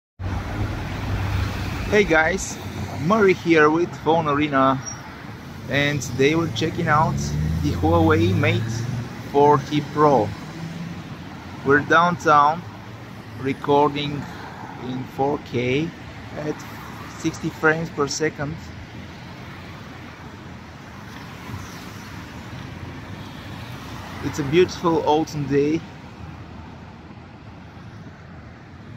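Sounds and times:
city street traffic rumble: 0:00.2 - 0:28.9
man's voice: 0:05.7 - 0:10.4, 0:11.6 - 0:12.6, 0:13.4 - 0:14.2.

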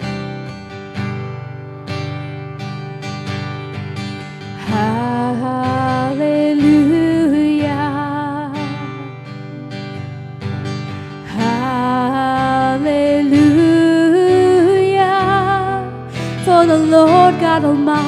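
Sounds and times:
strummed acoustic guitar: 0:00.0 - 0:18.0
person singing with vibrato: 0:04.5 - 0:10.2, 0:11.0 - 0:18.0.

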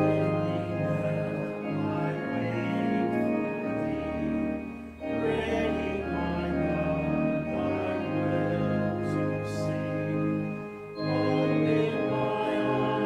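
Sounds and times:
church organ chords: 0:00.0 - 0:13.0
congregation singing: 0:00.0 - 0:13.0.

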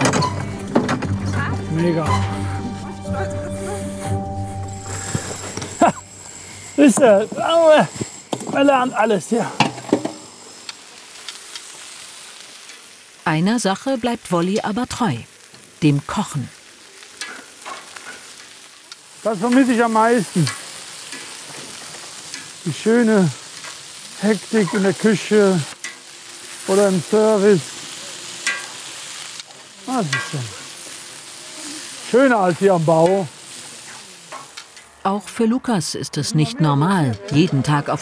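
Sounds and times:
sausages sizzling on griddle: 0:01.7 - 0:35.1.

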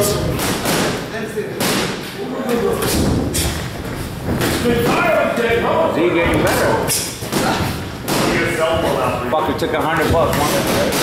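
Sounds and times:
boxing thuds: 0:00.0 - 0:01.0, 0:02.8 - 0:05.5, 0:06.2 - 0:09.0, 0:09.9 - 0:11.0
men talking: 0:01.0 - 0:11.0.

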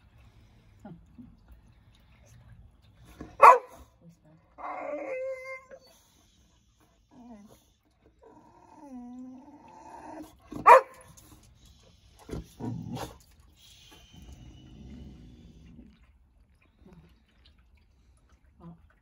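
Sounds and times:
dog barking sharply: 0:03.4 - 0:03.8.

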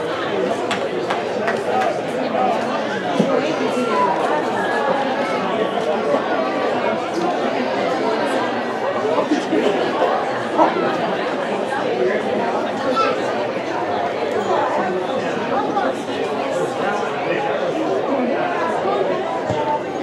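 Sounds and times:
chatter of many people: 0:00.0 - 0:20.0.

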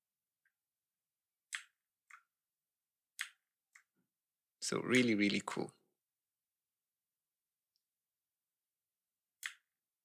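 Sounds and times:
soft computer mouse clicks: 0:01.5 - 0:02.3, 0:03.2 - 0:03.9, 0:09.4 - 0:09.7.

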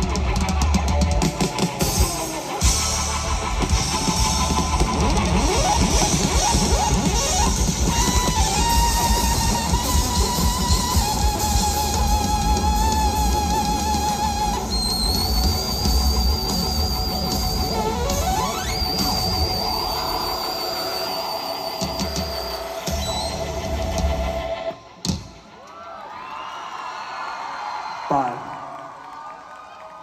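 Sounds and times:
live band playing: 0:00.0 - 0:25.6
crowd cheering and whooping: 0:00.2 - 0:30.0.

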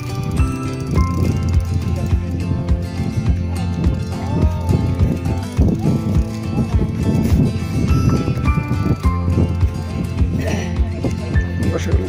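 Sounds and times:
music with percussive beat: 0:00.0 - 0:12.0.

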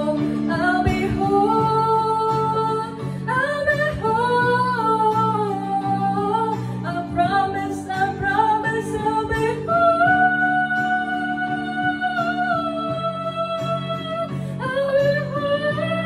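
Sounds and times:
woman singing into a microphone: 0:00.0 - 0:16.0.

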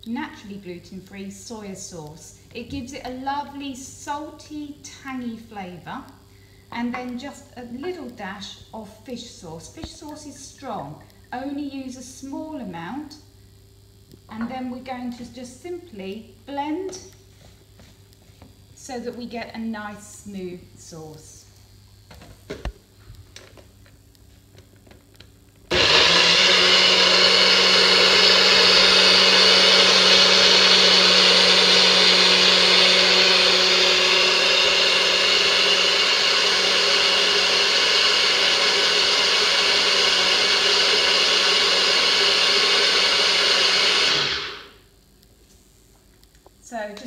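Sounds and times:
blender motor running: 0:25.7 - 0:44.8.

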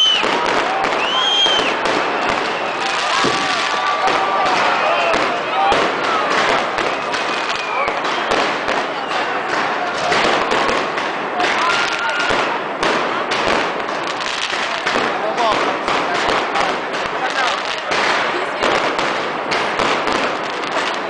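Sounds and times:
fireworks bangs and crackles: 0:00.0 - 0:21.0.

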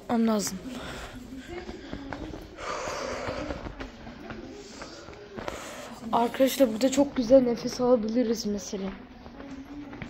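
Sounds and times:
person breathing: 0:00.6 - 0:06.1
faint clicks and taps: 0:01.4 - 0:02.6, 0:03.2 - 0:10.0.

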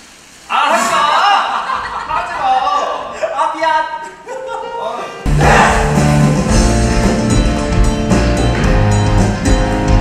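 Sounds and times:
man laughing loudly: 0:00.9 - 0:03.4.

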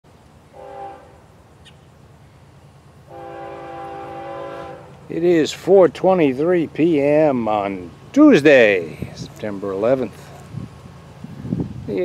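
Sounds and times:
low steady hum: 0:00.1 - 0:11.8
locomotive air horn: 0:00.5 - 0:01.3, 0:03.0 - 0:05.1.

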